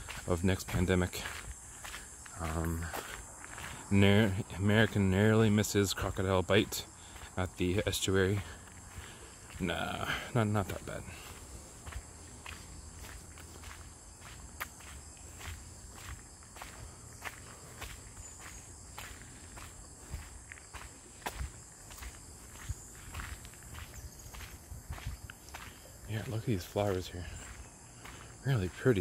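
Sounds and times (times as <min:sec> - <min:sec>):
footsteps on gravel: 0:00.0 - 0:29.0.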